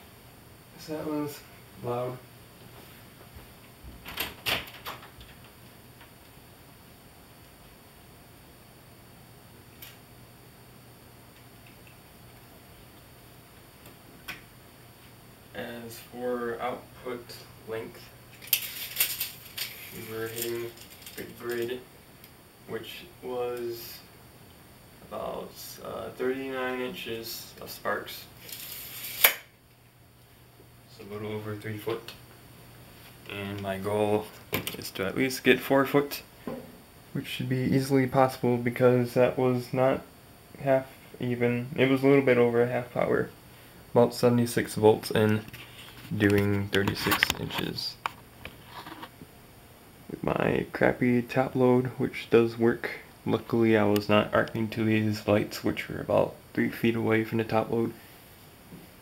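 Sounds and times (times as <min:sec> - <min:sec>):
low electrical hum: 0:00.0 - 0:59.0
tape measure blade snapping shut: 0:29.1 - 0:29.5.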